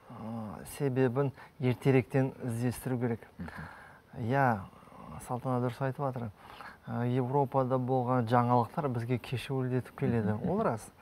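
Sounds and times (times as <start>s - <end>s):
man talking: 0.1s - 11.0s.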